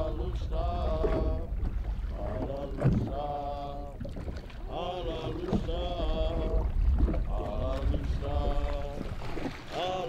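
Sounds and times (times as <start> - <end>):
low rumble: 0.0 - 9.3.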